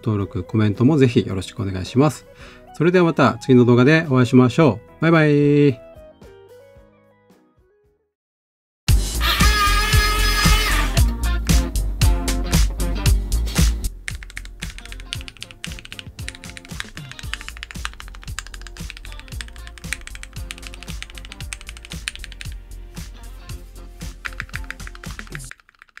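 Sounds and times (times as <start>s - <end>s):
quiet background music: 0.0s - 7.9s, 13.9s - 25.5s
fast mechanical keyboard typing: 14.1s - 22.6s, 24.1s - 26.0s.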